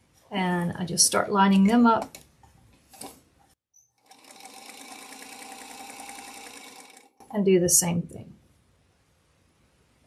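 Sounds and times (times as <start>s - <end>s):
sewing machine stitching: 4.0s - 7.3s.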